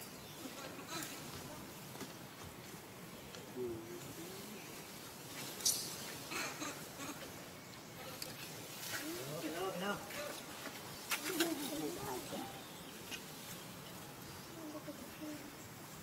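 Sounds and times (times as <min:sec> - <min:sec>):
faint outdoor background noise: 0:00.0 - 0:16.0.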